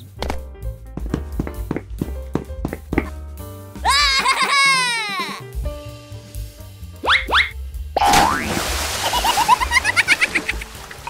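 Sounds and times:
cartoon splash: 7.0s - 10.7s.

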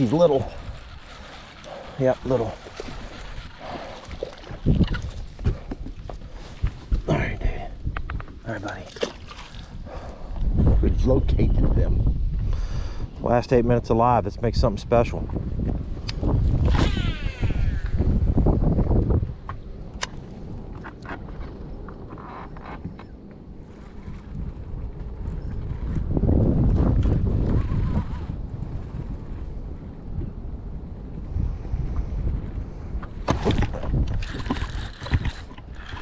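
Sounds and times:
fishing reel spool whirring: 0.0s - 5.1s, 16.6s - 18.4s, 34.2s - 36.0s
wind buffeting microphone: 0.0s - 36.0s
reel and rod clicks: 33.5s - 36.0s.

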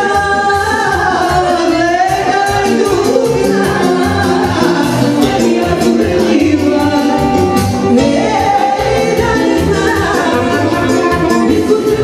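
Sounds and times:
band music with steady beat: 0.0s - 12.0s.

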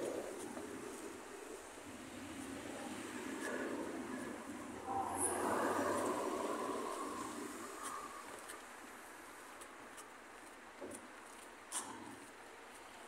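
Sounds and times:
vehicle passing: 2.1s - 8.4s.

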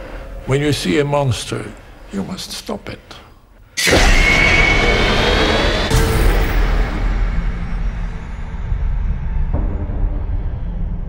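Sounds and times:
booming hit: 3.8s - 11.0s.

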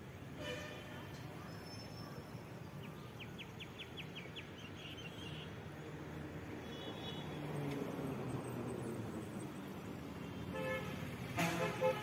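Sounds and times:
street traffic rumble: 0.0s - 12.0s
bird chirping: 1.4s - 5.6s.

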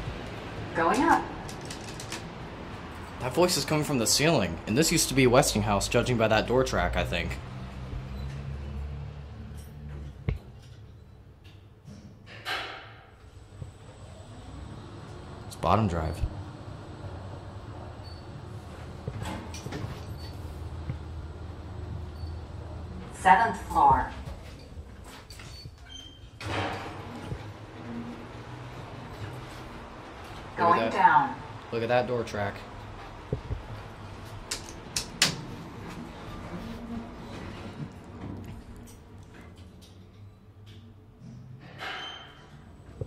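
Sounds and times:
elevator ride hum: 0.0s - 11.5s, 13.2s - 41.3s
elevator door clicks: 34.4s - 35.6s.

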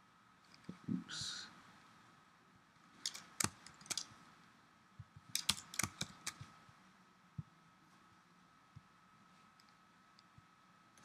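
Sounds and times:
computer keyboard keystrokes: 3.0s - 4.1s, 5.3s - 6.5s.

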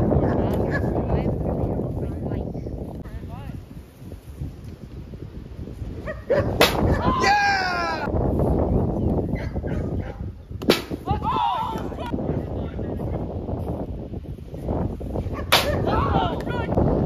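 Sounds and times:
wind rumble on microphone: 0.0s - 17.0s
wiffle ball being struck: 6.6s - 7.0s, 10.6s - 11.1s, 15.5s - 15.9s
person shouting: 7.0s - 8.1s, 11.0s - 12.1s, 15.8s - 16.8s.

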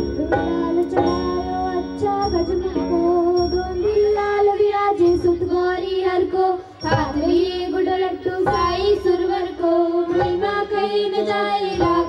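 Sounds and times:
instrumental backing: 0.0s - 12.0s
woman singing: 0.0s - 12.0s.

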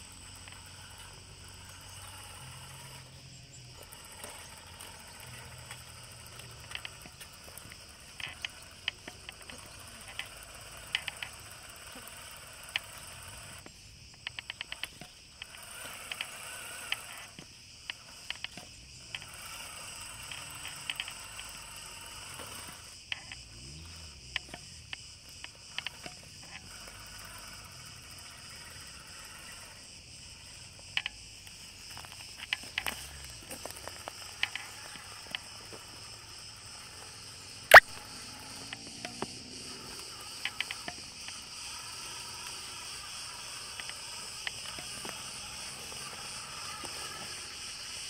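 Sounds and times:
insect chorus: 0.0s - 48.0s
rc crawler crawling: 0.0s - 48.0s
light clicks and ticks: 3.7s - 19.5s, 20.2s - 21.5s, 22.4s - 23.5s, 24.3s - 26.7s, 30.9s - 36.1s, 37.7s - 41.4s, 43.3s - 47.4s.

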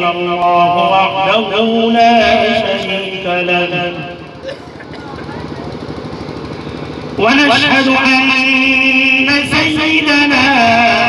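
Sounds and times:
small engine running: 0.7s - 11.0s.

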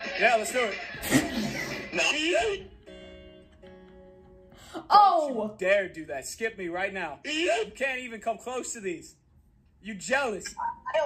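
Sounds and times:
electric guitar chords: 2.6s - 4.8s.

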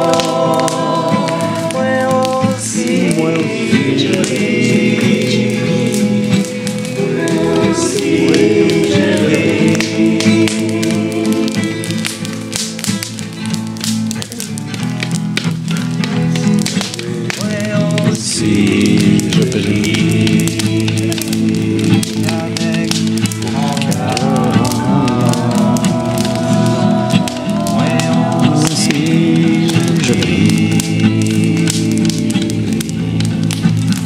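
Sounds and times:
group of voices singing: 0.0s - 13.1s, 16.6s - 34.0s
strummed acoustic guitar: 0.0s - 34.0s.

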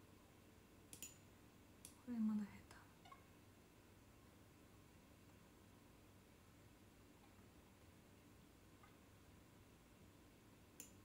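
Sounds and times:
faint clicks: 1.8s - 2.0s, 10.7s - 11.0s.

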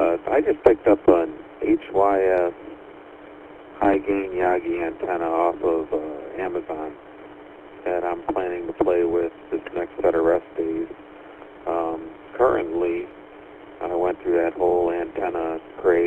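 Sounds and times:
man talking over radio: 0.0s - 2.8s, 3.8s - 7.0s, 7.8s - 10.9s, 11.7s - 13.1s, 13.8s - 16.0s.

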